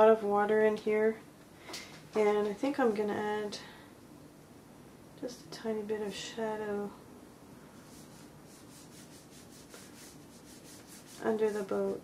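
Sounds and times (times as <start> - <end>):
paintbrush rubbing on canvas: 7.8 - 12.0.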